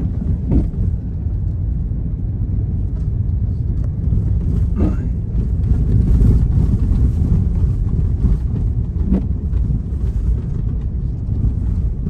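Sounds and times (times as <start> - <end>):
vehicle engine and tyres on snow: 0.0 - 12.0.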